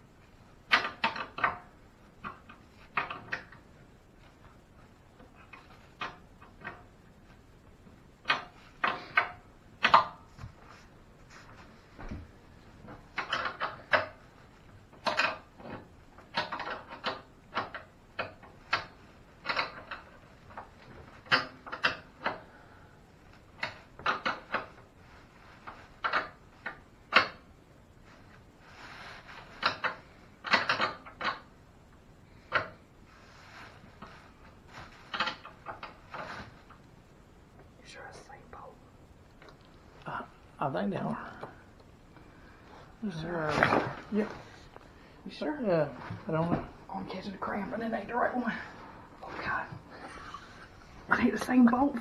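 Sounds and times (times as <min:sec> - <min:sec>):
metal parts clicking and rattling: 0:13.1 - 0:14.3, 0:15.0 - 0:22.4, 0:29.2 - 0:31.5.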